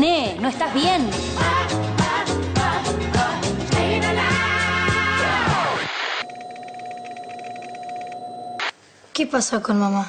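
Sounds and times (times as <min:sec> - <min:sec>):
buzzing static: 0:05.2 - 0:08.8
high electronic beep: 0:06.2 - 0:08.7.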